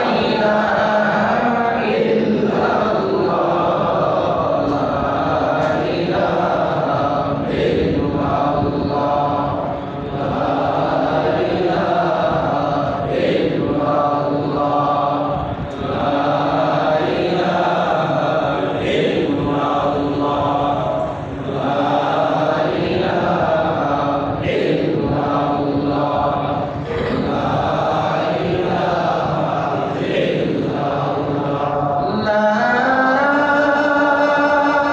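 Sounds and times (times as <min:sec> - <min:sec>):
men chanting: 0:00.0 - 0:34.9.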